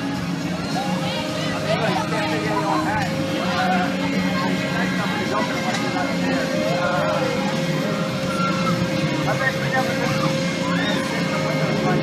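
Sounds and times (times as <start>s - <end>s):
mechanical drone of rides: 0.0s - 12.0s
people's voices and calls: 0.0s - 12.0s.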